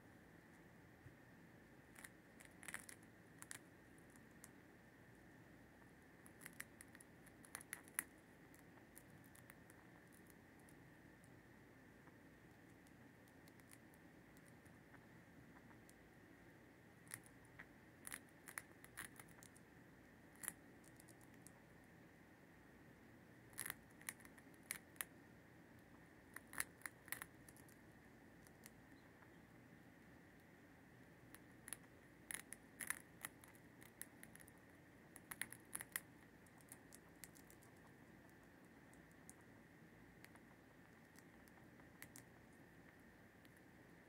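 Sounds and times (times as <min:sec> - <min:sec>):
mouse crunching treat: 0:01.9 - 0:04.6, 0:05.8 - 0:11.4, 0:12.0 - 0:15.0, 0:17.0 - 0:19.7, 0:20.3 - 0:21.6, 0:23.4 - 0:29.3, 0:31.2 - 0:43.7.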